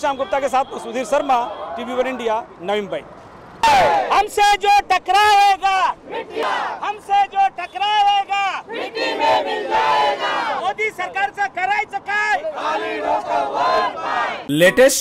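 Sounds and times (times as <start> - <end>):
crowd chanting slogans: 3.6 - 4.1, 6.0 - 6.8, 8.6 - 10.6, 12.4 - 14.5.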